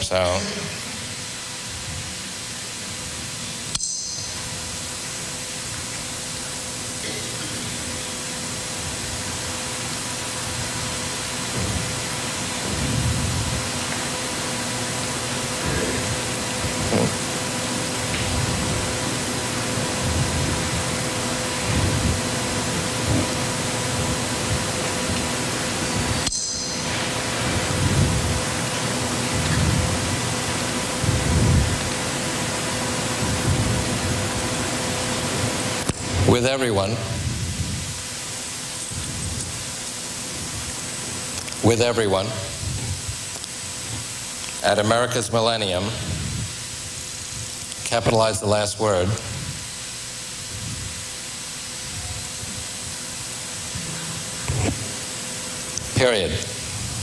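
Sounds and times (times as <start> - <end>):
faint hum tones: 0.0 - 57.0
loud steady hiss: 0.0 - 57.0
low rumbles: 11.4 - 32.1.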